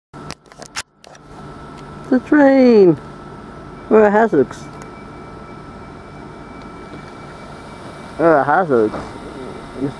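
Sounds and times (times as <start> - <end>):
low steady hum: 0.2 - 9.9.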